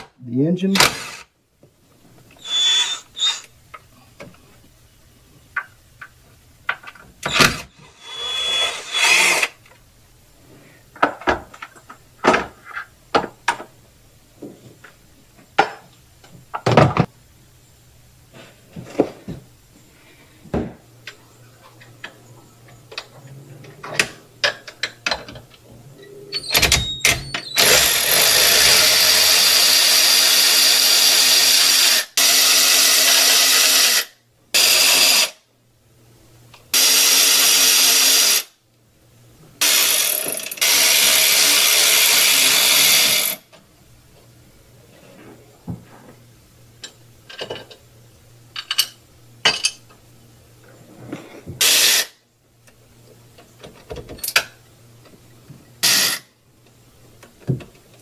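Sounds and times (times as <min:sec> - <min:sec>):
parts clicking and knocking: 0:20.6 - 0:25.6
cordless electric ratchet running: 0:27.6 - 0:35.4, 0:36.8 - 0:38.5, 0:39.6 - 0:43.4, 0:55.8 - 0:56.2.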